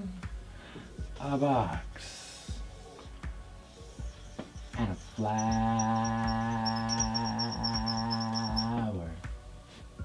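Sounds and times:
marker squeaking on whiteboard: 3.7 - 8.9.

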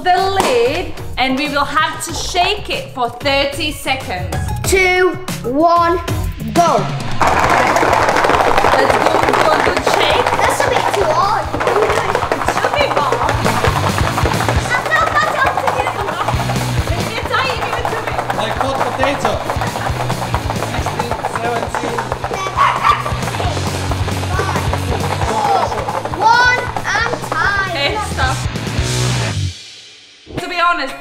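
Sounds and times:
background music with bass: 0.0 - 8.8, 10.9 - 30.6
excited voices: 6.7 - 28.6
garlic rattling in a container: 7.2 - 28.4.

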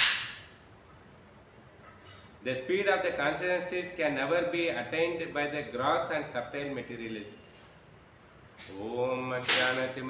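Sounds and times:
sharp crack: 0.0 - 0.6, 9.4 - 10.0.

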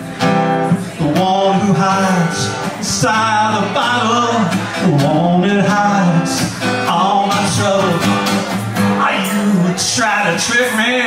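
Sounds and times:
strummed acoustic guitar: 0.0 - 11.0
man singing: 0.6 - 11.0.

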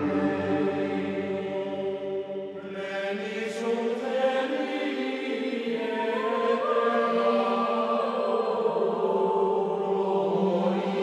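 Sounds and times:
choir chanting in long notes: 0.0 - 11.0.

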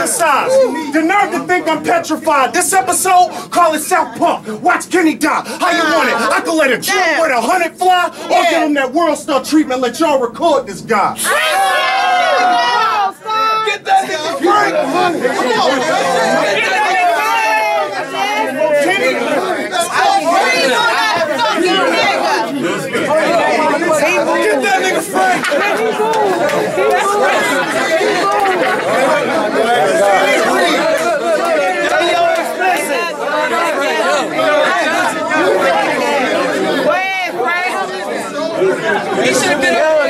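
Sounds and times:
crowd talking and shouting: 0.0 - 40.0.

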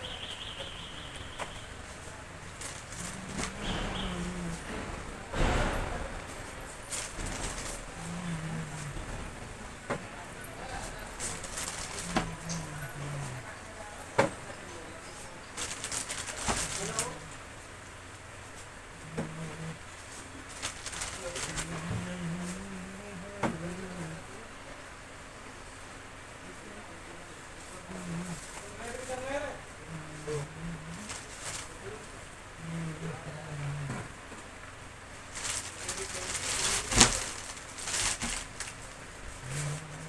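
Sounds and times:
plastic snack packets crinkling: 10.8 - 13.3, 15.6 - 17.2, 20.5 - 22.5, 35.3 - 39.0.

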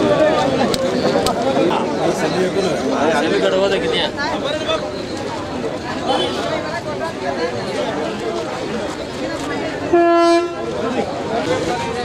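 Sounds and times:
people talking: 0.0 - 12.0
bus horn honk: 9.9 - 10.7.

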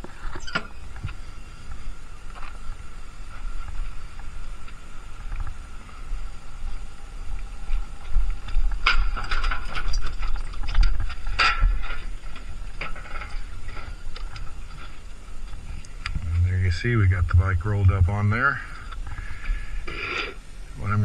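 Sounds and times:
steady low rumble: 0.9 - 21.0.

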